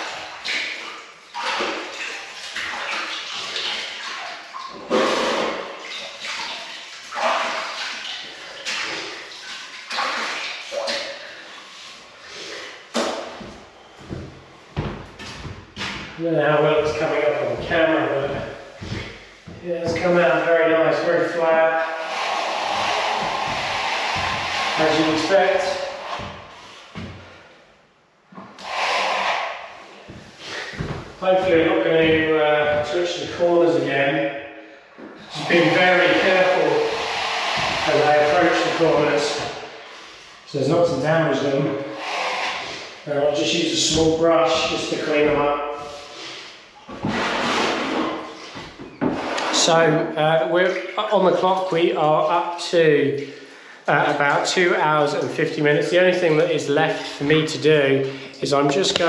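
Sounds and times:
man's voice: 16.2s - 18.5s, 19.5s - 21.9s, 24.8s - 25.9s, 31.2s - 34.3s, 35.3s - 37.0s, 37.8s - 39.5s, 40.5s - 41.8s, 43.1s - 45.9s, 49.6s - 59.0s
trowel scraping plaster: 16.8s - 27.0s, 28.5s - 32.2s, 35.2s - 40.4s, 41.6s - 43.0s, 45.8s - 49.6s.

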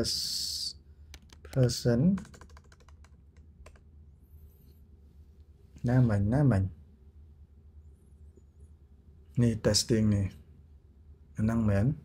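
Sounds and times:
typing on computer keyboard: 1.1s - 3.9s.

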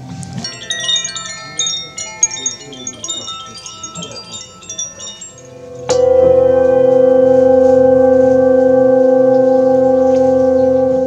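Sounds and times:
metal chimes tinkling: 0.0s - 11.0s.

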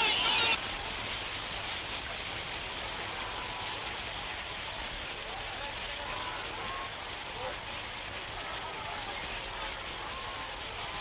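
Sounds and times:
swimmers splashing: 0.0s - 11.0s.

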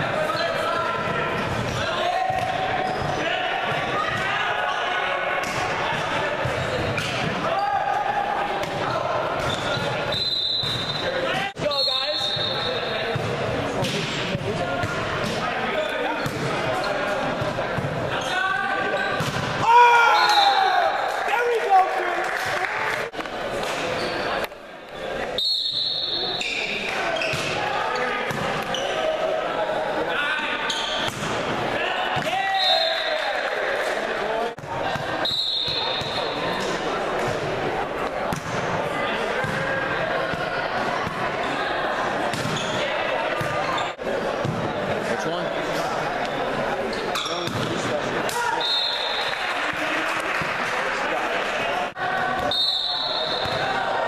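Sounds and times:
sneakers squeaking on court: 1.4s - 3.2s, 9.4s - 14.1s, 23.8s - 24.4s, 25.6s - 29.1s, 30.6s - 31.4s, 42.3s - 44.6s, 46.4s - 47.8s, 53.1s - 53.7s
volleyball hits: 5.4s - 7.5s, 8.6s - 16.7s, 19.2s - 20.7s, 26.8s - 28.9s, 30.9s - 33.1s, 37.2s - 41.3s, 42.2s - 43.7s, 47.2s - 48.6s.

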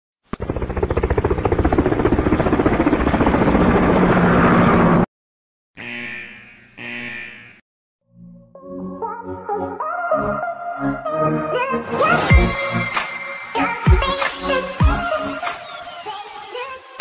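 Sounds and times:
propeller aircraft engine throbbing: 0.2s - 5.1s.

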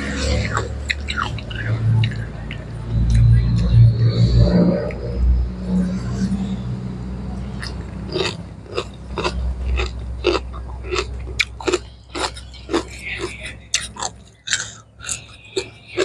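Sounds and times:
chewing raw vegetables crunching: 0.0s - 3.8s, 7.6s - 16.0s
low steady rumble: 0.0s - 15.6s.

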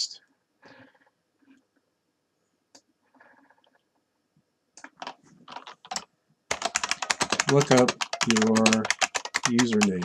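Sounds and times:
computer keyboard typing: 4.8s - 10.0s.

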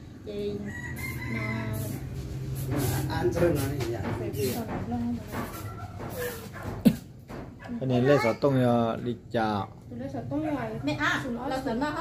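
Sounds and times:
rooster crowing: 0.5s - 2.2s.

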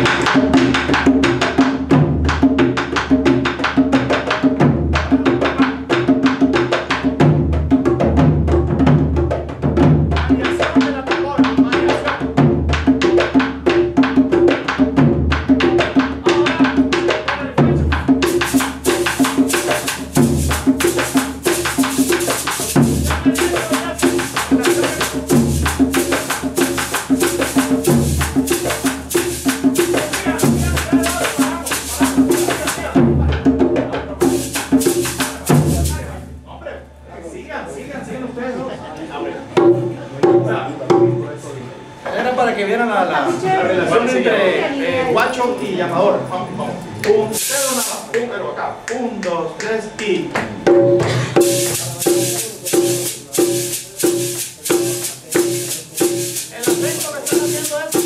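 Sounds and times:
drum ensemble playing rhythm: 0.0s - 36.5s, 39.4s - 41.4s, 47.3s - 48.2s, 50.0s - 58.0s
shaker: 18.1s - 33.0s, 34.2s - 36.3s, 47.3s - 48.1s, 51.4s - 58.0s.

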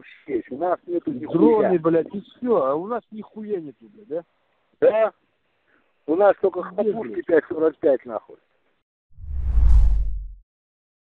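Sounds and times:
deep whoosh: 9.2s - 10.4s.

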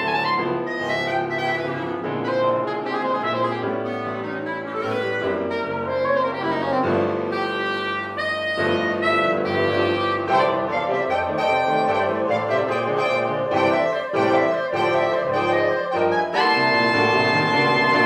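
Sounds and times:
clarinet: 0.0s - 18.0s
grand piano: 0.0s - 18.0s
soprano saxophone: 0.0s - 18.0s.

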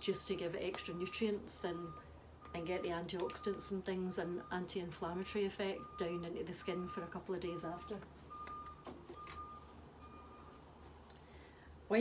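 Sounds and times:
faint electronic beep: 7.7s - 10.6s.

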